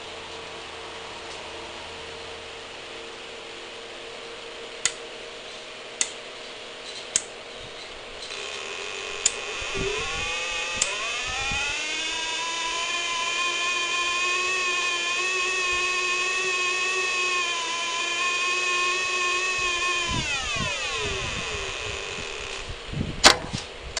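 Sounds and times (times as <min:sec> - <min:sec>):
buzzy electronic tone: 0:08.3 - 0:22.8
sharp loud click: 0:23.2 - 0:23.7.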